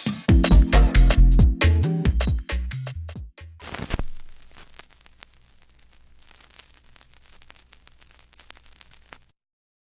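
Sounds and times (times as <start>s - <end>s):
static hiss with crackles: 3.6s - 9.4s.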